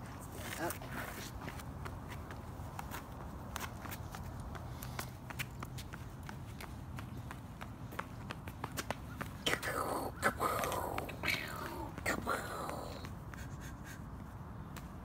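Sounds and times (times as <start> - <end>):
adult footsteps: 0.0 - 15.0
toddler footsteps on asphalt: 0.0 - 15.0.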